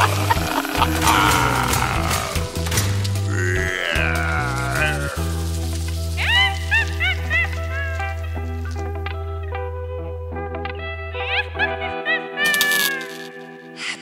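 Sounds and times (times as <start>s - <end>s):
instrumental children's music: 0.0s - 14.0s.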